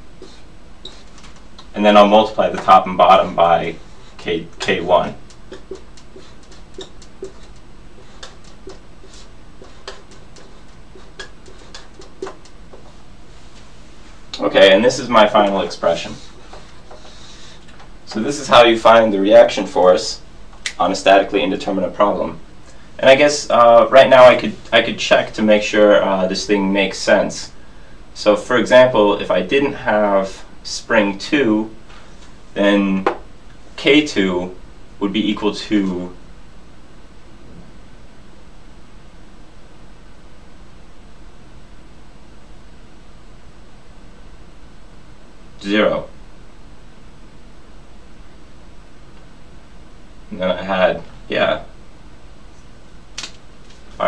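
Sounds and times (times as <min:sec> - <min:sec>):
steady hiss: 0:00.0 - 0:36.7
marker writing on whiteboard: 0:03.8 - 0:13.0.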